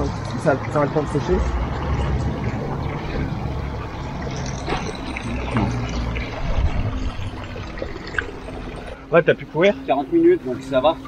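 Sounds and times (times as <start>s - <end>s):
fountain water trickling into basin: 0.0s - 11.0s.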